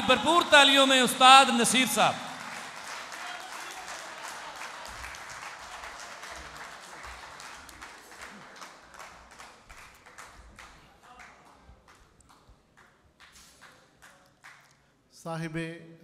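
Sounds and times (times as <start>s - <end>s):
audience applauding: 0.0s - 12.0s.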